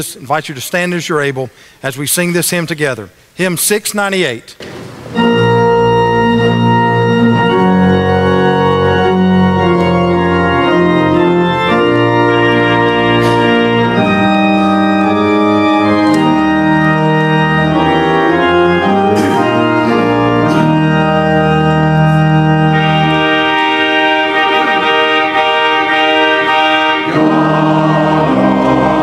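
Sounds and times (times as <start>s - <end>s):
church organ playing chords: 4.6s - 29.0s
congregation and choir singing: 4.6s - 29.0s.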